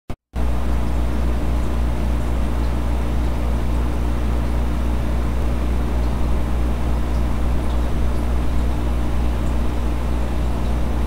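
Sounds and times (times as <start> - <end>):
aquarium pumps humming: 0.4 - 11.0.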